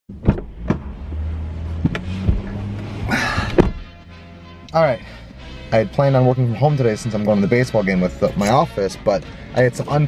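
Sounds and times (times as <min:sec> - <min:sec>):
car door shutting: 0:00.1 - 0:00.9, 0:01.7 - 0:03.9
knocks and thumps: 0:00.1 - 0:00.9, 0:01.8 - 0:03.9.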